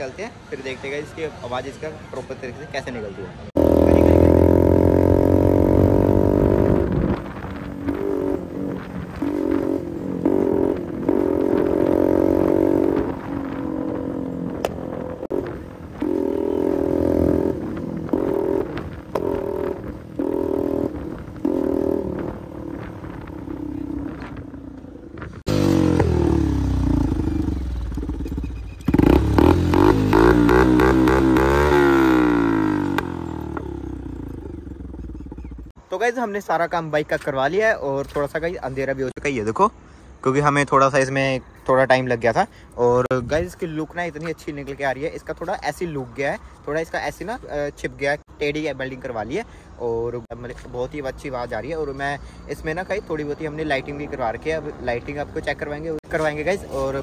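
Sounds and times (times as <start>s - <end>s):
motorcycle engine revving: 3.5s - 35.8s.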